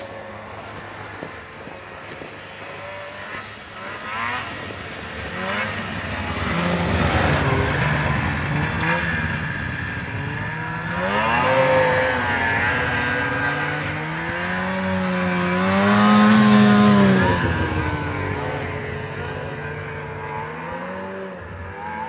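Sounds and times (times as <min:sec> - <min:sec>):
snowmobile engines revving: 0:00.0 - 0:22.0.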